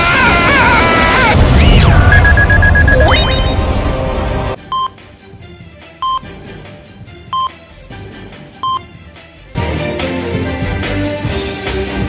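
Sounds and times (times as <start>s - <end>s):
rapid electronic beeping: 1.8s - 3.6s.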